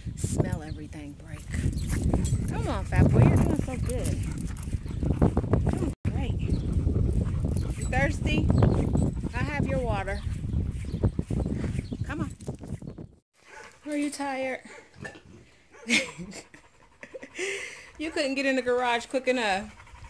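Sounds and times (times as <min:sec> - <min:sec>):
rumbling microphone noise: 0:00.0 - 0:13.2.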